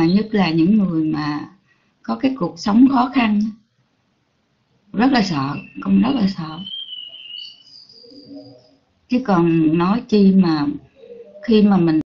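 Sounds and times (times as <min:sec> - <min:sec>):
faint high-pitched tones: 0:04.9 - 0:12.0.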